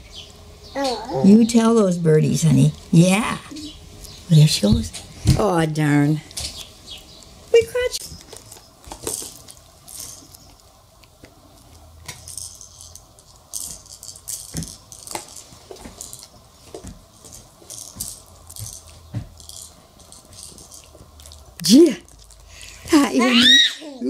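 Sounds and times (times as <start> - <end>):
plastic toy rattling and clicking: 8.2 - 10.4, 12.1 - 16.3, 17.3 - 21.4.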